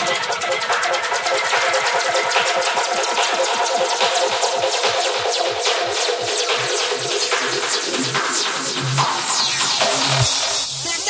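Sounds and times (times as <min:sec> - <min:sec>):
fast drum roll: 0:00.0 - 0:11.0
held synth chords: 0:00.0 - 0:11.0.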